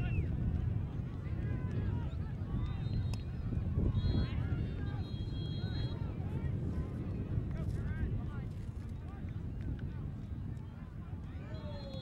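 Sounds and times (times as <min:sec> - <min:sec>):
wind rumble on microphone: 0:00.0 - 0:12.0
referee's whistle blasts: 0:11.5 - 0:12.0.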